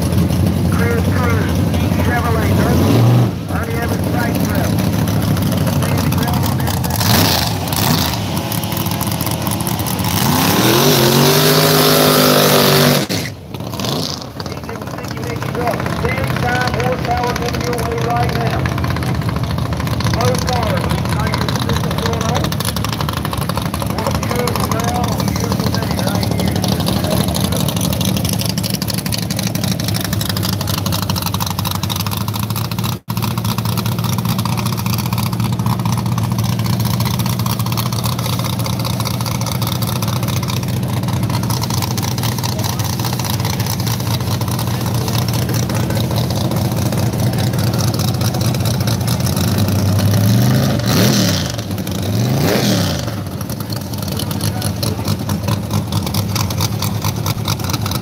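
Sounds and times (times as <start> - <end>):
car engine idling and revving: 0.0 - 58.0.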